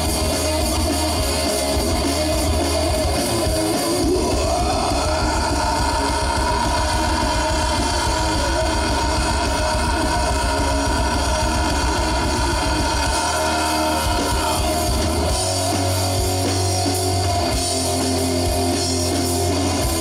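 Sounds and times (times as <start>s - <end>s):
bass guitar: 0.0s - 20.0s
drums: 0.0s - 20.0s
electric guitars: 0.0s - 20.0s.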